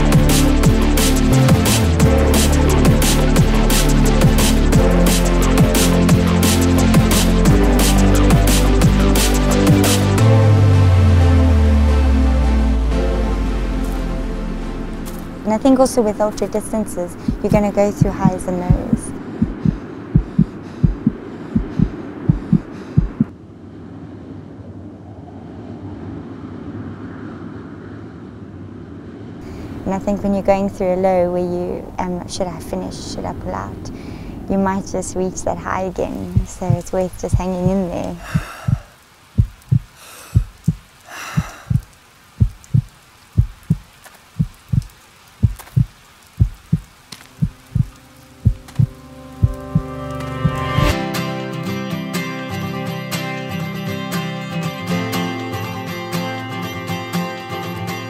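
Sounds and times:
music: 0.0 - 19.2, 47.6 - 58.0
heartbeat thumps: 17.1 - 23.3, 36.3 - 51.0.

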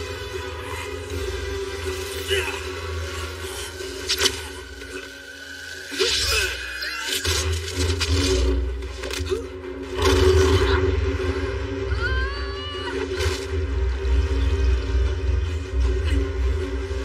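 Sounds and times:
dramatic film score: 0.0 - 17.0.

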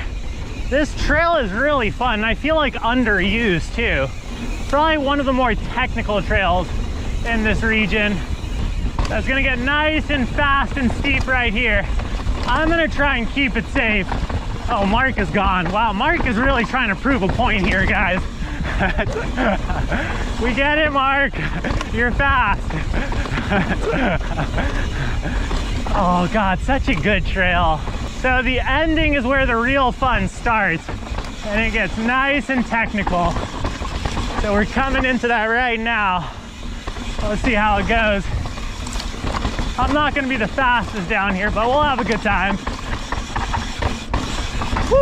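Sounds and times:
bike tyre rumble on dirt: 0.0 - 45.0
rider shouting woo: 44.7 - 45.0.

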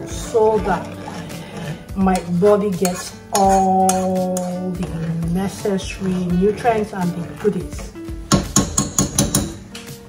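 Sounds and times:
teaspoon clinking on saucepan: 2.2 - 4.6.

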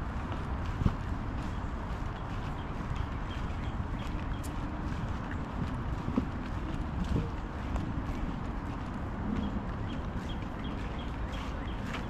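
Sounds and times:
footsteps on grass: 0.0 - 12.0
steady low rumble: 0.0 - 12.0.

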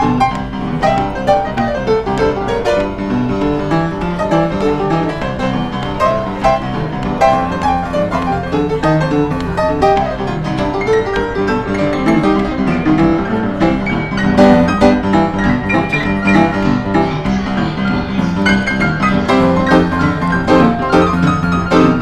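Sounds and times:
upright piano quick notes: 0.0 - 22.0.

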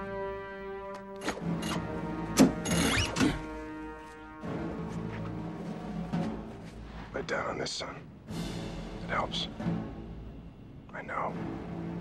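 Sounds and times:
sustained orchestral film score: 0.0 - 12.0.

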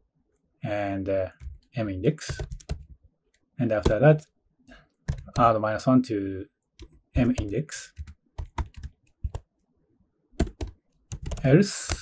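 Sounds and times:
computer keyboard keystrokes: 2.3 - 2.9, 5.1 - 5.5, 6.8 - 9.5, 10.4 - 12.0.

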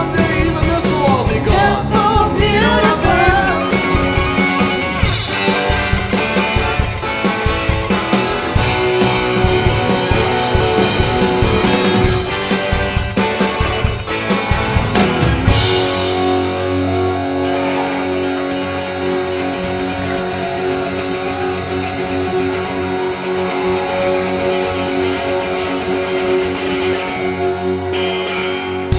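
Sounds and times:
drums: 0.0 - 28.9
electric guitars ringing chord: 0.0 - 28.9.

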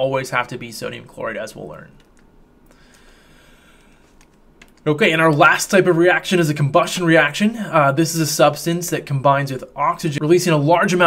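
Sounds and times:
man speaking: 0.0 - 2.0, 4.8 - 11.0.

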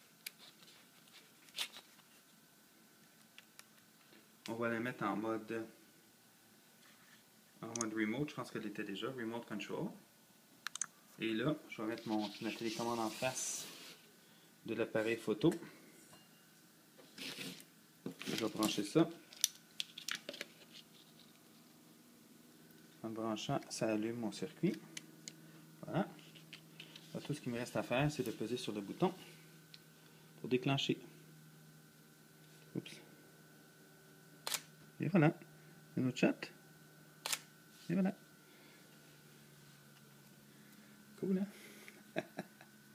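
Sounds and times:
faint steady hum: 0.0 - 42.9
camera shutter click: 34.4 - 34.7, 37.2 - 37.5.

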